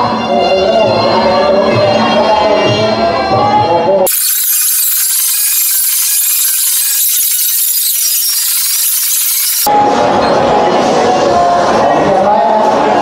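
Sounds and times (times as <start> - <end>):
high-pitched static hiss: 4.1 - 9.7.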